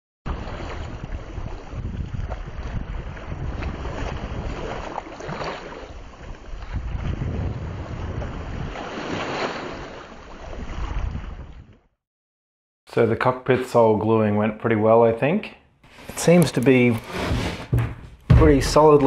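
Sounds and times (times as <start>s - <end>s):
wind buffeting microphone: 0.3s - 5.0s, 5.9s - 8.8s, 10.5s - 11.7s
sea waves splashing: 0.3s - 11.4s.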